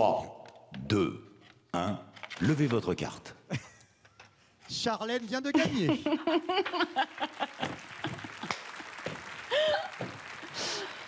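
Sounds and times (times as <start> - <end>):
people laughing: 5.5 - 11.0
light applause: 6.8 - 11.0.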